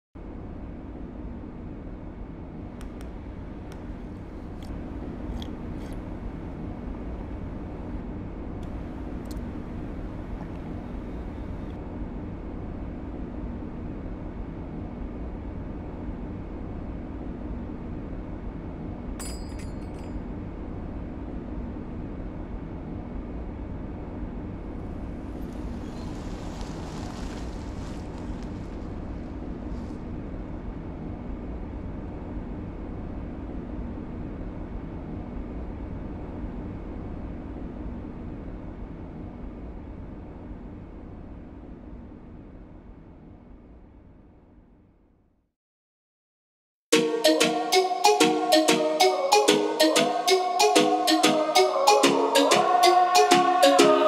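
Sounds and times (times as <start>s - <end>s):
low room hum: 0.2s - 45.5s
hiss: 25.8s - 28.8s.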